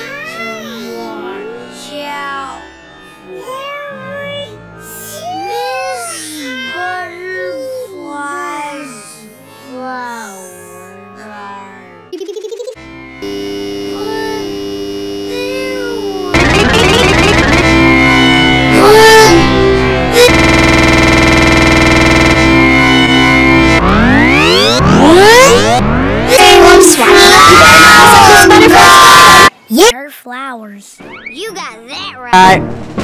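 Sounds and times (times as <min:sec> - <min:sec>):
electronic buzz: 0:12.9 - 0:29.5
synthesizer-like tones: 0:12.9 - 0:29.5
warbling pitch-bent sounds: 0:14.9 - 0:26.4.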